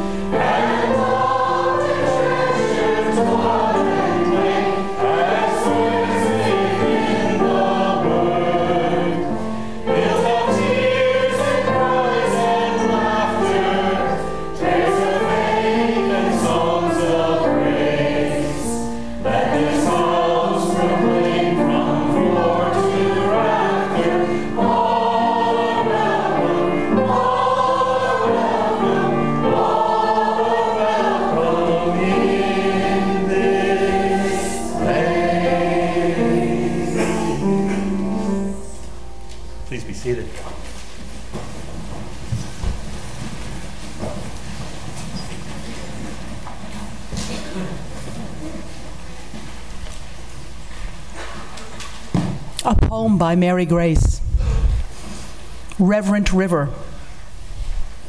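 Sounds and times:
choir singing: 0:00.0 - 0:40.2.

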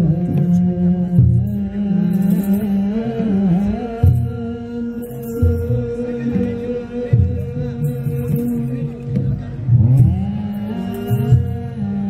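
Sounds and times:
low drum beats: 0:00.0 - 0:12.0
voices singing a steady note: 0:00.0 - 0:12.0.

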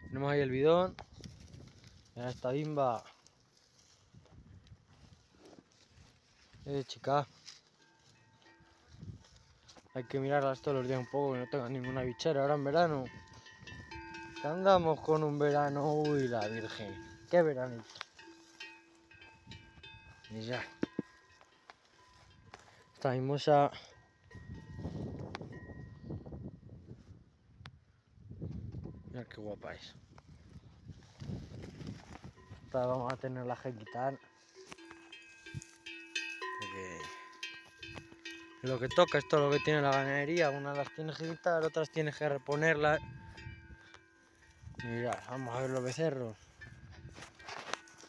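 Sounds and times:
footsteps through dry grass: 0:00.8 - 0:27.2, 0:29.6 - 0:48.0
faint steady ringing tone: 0:07.3 - 0:26.3, 0:32.2 - 0:48.0
man's voice: 0:10.0 - 0:13.1, 0:14.4 - 0:17.9, 0:32.7 - 0:34.2, 0:36.6 - 0:37.2, 0:38.6 - 0:43.0, 0:44.8 - 0:46.4.

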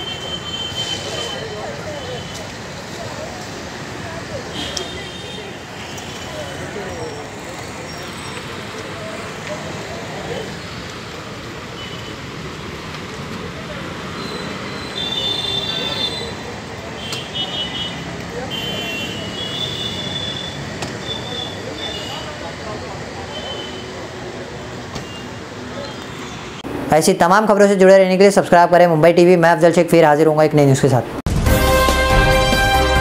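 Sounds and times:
people's voices: 0:00.0 - 0:31.2
steady traffic noise: 0:00.0 - 0:31.3.

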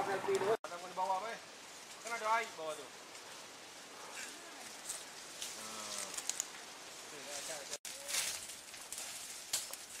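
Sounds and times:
leaf litter burning crackling: 0:00.3 - 0:10.0.

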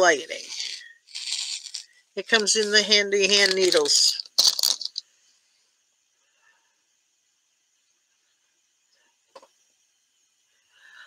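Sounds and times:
faint steady hiss: 0:00.0 - 0:11.0
plastic package crackling: 0:00.3 - 0:05.0.

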